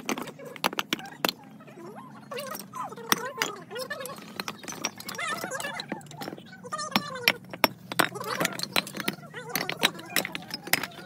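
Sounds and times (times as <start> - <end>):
bricks clinking together: 0.0 - 1.5, 2.3 - 11.0.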